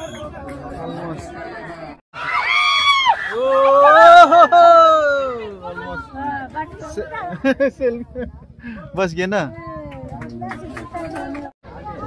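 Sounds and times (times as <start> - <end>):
chatter of spectators: 0.0 - 2.0, 4.5 - 12.0.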